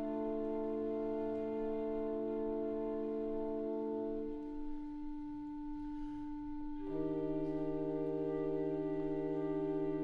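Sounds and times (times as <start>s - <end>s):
woodwinds holding a chord: 0.0s - 4.5s, 6.8s - 10.0s.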